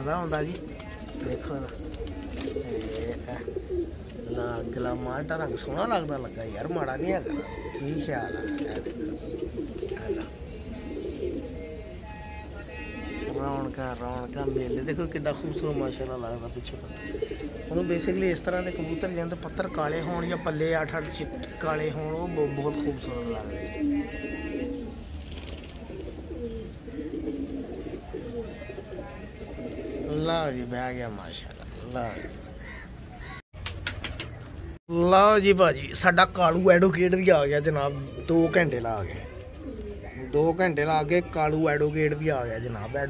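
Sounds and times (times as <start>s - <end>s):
pigeons cooing: 0.0s - 34.8s, 36.4s - 43.0s.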